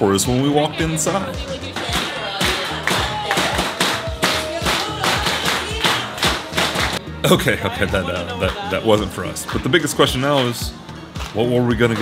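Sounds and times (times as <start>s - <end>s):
background music: 0.0s - 12.0s
crowd clapping in rhythm: 1.1s - 7.0s, 9.4s - 12.0s.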